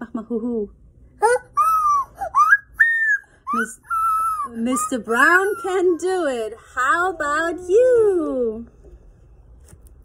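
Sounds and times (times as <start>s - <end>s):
person imitating owl hoots: 1.2s - 4.6s.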